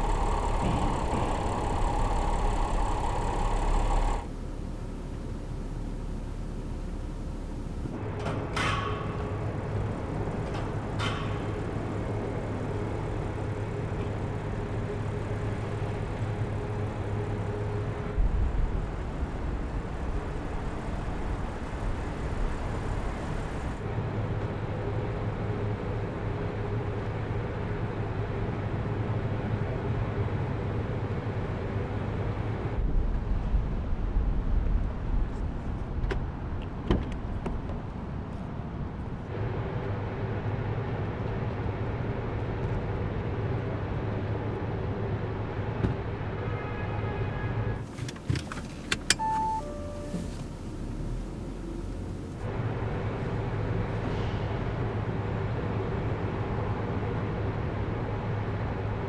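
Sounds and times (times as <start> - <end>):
car engine humming: 0.0 - 8.0, 47.9 - 52.9
faint high tone: 49.2 - 50.4.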